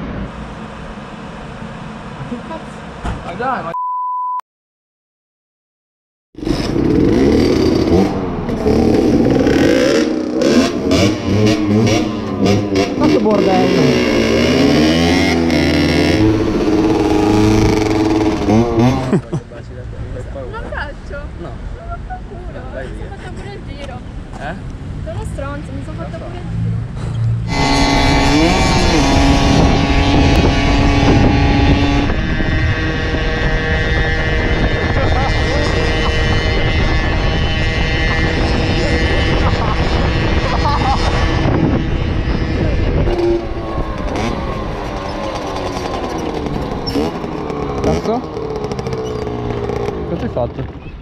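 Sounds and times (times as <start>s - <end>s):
two-stroke motorcycle engine revving: 6.4s - 19.4s, 27.4s - 51.0s
wind noise on microphone: 27.3s - 47.9s.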